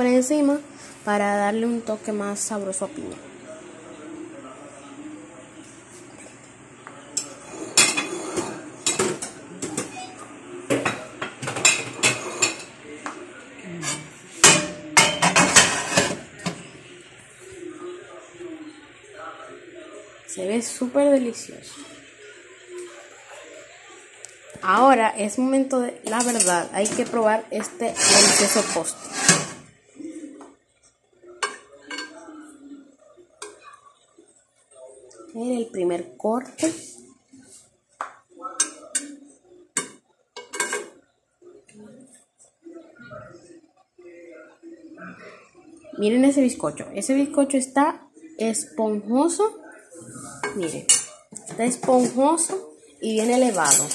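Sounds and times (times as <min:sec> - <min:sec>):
plate and cutlery clattering: 0:07.2 - 0:10.0, 0:10.8 - 0:12.8, 0:13.8 - 0:16.6, 0:26.0 - 0:27.2, 0:27.8 - 0:29.7, 0:39.8 - 0:41.0, 0:50.4 - 0:53.9
cutlery clinking on ceramic plate: 0:13.9 - 0:16.6, 0:39.8 - 0:41.0.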